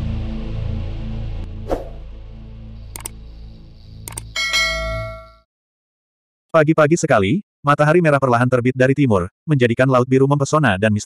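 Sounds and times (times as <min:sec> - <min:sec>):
mouse clicks: 0:03.0 - 0:03.2, 0:04.1 - 0:04.4
bright bell ding: 0:04.4 - 0:05.5.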